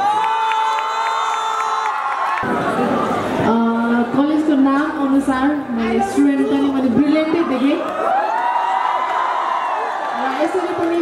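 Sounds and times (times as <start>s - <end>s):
audience cheering: 0.0s - 3.3s, 7.8s - 11.0s.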